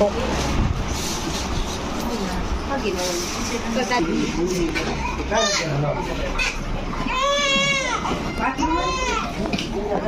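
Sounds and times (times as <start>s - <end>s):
people chattering: 1.4s - 10.0s.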